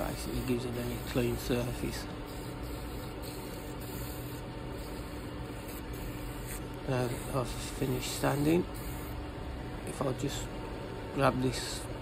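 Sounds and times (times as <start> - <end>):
sandpaper hissing on spinning wood: 0.0 - 9.2.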